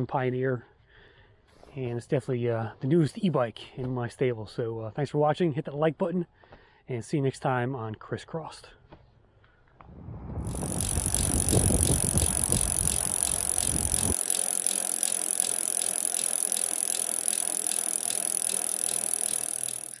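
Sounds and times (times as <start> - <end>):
low rumble: 9.8 - 13.1
bike tyre noise: 10.2 - 20.0
fast even ticking: 10.4 - 20.0
rattling: 10.5 - 20.0.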